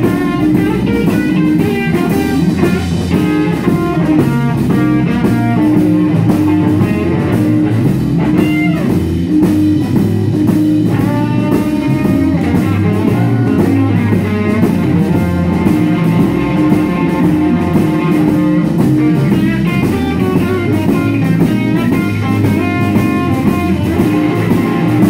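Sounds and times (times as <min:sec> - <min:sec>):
bass guitar: 0:00.0 - 0:25.0
drum kit beat: 0:00.0 - 0:25.0
electric guitars: 0:00.0 - 0:25.0.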